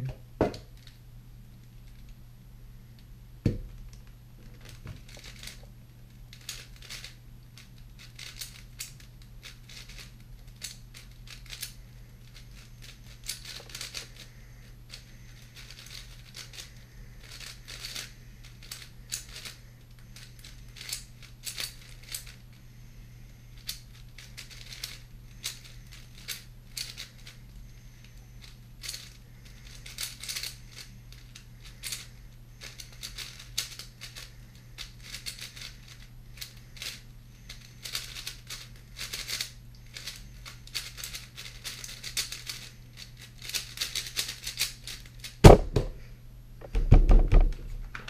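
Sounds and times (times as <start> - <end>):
low steady hum: 0.0 - 48.0
cube thumping on mat: 3.4 - 3.8, 45.4 - 46.0, 46.6 - 47.7
puzzle cube clacking turns: 6.3 - 14.3, 14.9 - 22.5, 23.6 - 27.4, 28.4 - 45.9.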